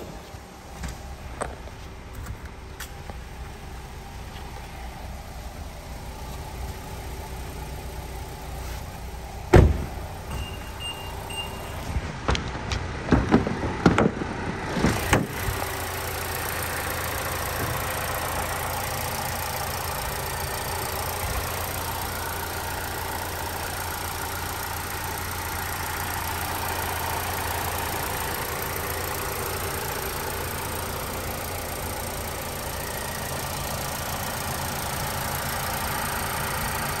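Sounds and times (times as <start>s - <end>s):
car engine idling: 0.0s - 37.0s
sharp thump: 9.5s - 10.5s
short high beeps: 10.3s - 11.8s.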